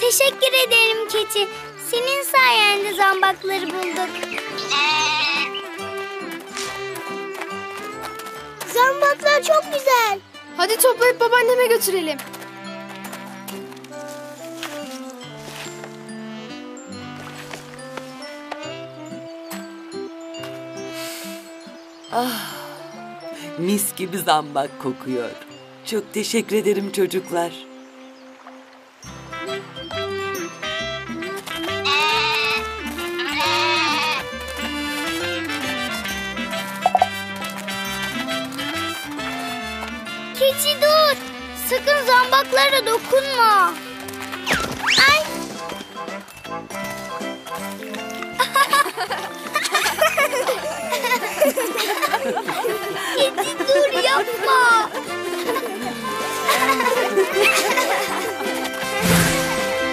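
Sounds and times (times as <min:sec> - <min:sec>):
light children's music: 0:00.0 - 0:59.9
cartoon goat bleating: 0:04.5 - 0:05.5, 0:31.7 - 0:34.4.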